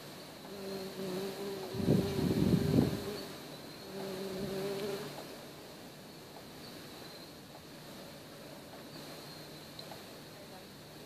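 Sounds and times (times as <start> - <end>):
fly buzzing: 0.4 - 5.3.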